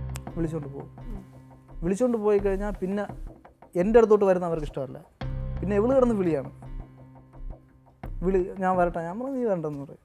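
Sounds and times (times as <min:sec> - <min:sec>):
man speaking: 0:00.3 - 0:03.2.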